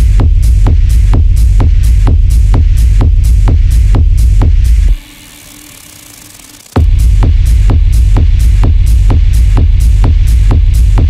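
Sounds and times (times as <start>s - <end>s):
droning bass: 0.0s - 11.0s
heavy techno kick drum: 0.0s - 11.0s
off-beat hi-hats: 0.0s - 11.0s.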